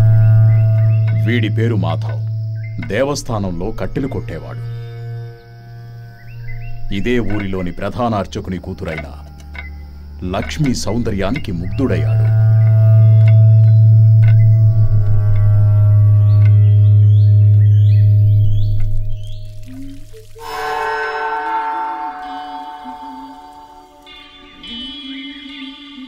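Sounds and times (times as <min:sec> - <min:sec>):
deep sustained drone: 0:00.0 - 0:25.2
sustained chord: 0:00.0 - 0:26.0
high sliding tones: 0:19.6 - 0:25.2.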